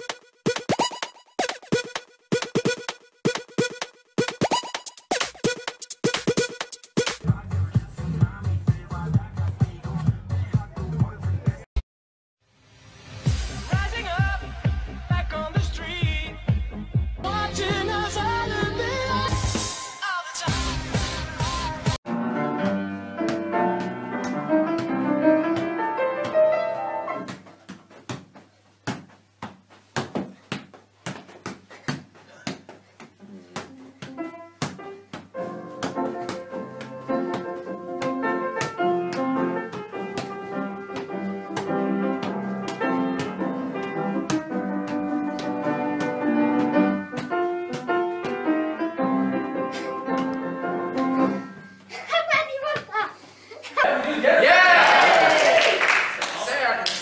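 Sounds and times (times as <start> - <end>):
upright piano playing: 22.1 - 27.3, 34.2 - 51.8.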